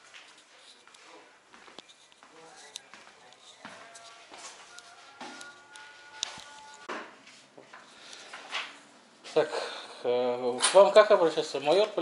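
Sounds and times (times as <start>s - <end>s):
footsteps on hard floor: 0.0s - 8.8s
faint distant voices: 0.5s - 6.9s.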